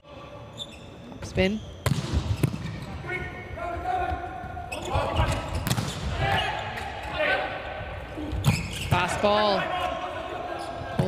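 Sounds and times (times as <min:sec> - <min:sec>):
shoe squeaks on court: 0:00.5 - 0:02.8, 0:04.7 - 0:06.8, 0:08.4 - 0:09.0.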